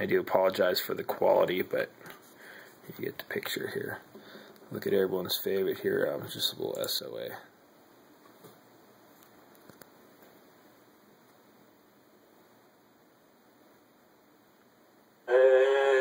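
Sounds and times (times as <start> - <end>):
tv soundtrack music from speaker: 15.2 - 16.0.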